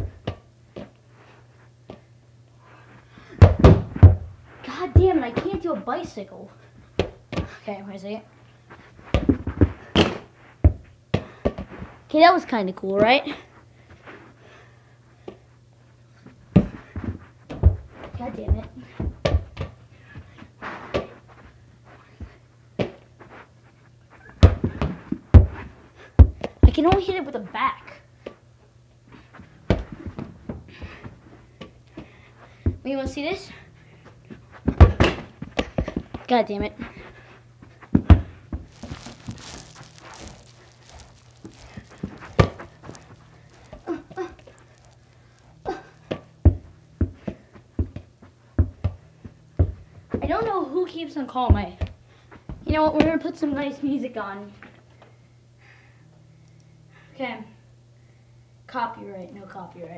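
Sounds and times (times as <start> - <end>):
soccer ball thudding: 3.4 - 4.3, 41.8 - 43.0
person breathing: 31.9 - 32.8, 55.6 - 57.2.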